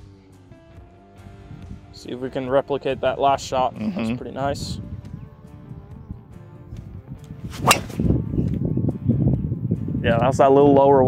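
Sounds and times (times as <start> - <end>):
golf club hitting ball: 7.5 - 8.2.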